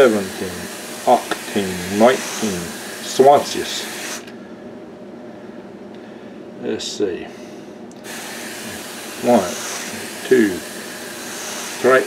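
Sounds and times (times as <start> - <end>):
water sprayer hissing: 0.0 - 4.3, 8.0 - 12.0
low background hum: 0.0 - 12.0.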